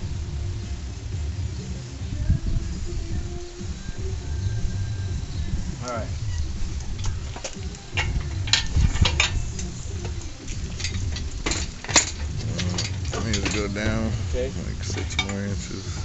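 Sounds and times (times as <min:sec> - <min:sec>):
low steady rumble: 0:00.0 - 0:16.0
metal chain clinking and clanking: 0:05.9 - 0:16.0.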